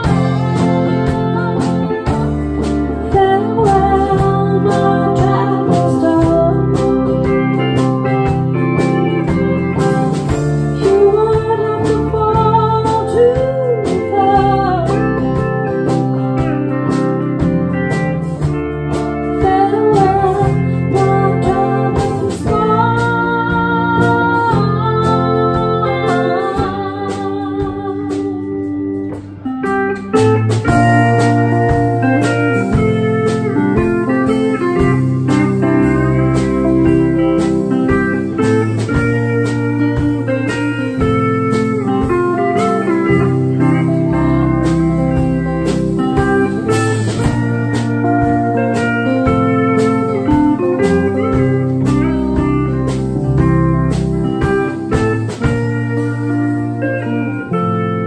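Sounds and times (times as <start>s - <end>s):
woman singing: 0.0s - 7.7s, 10.6s - 16.0s, 19.2s - 28.8s
bass and drums: 0.0s - 58.0s
electric guitar: 0.0s - 58.0s
pedal steel guitar: 0.0s - 58.0s.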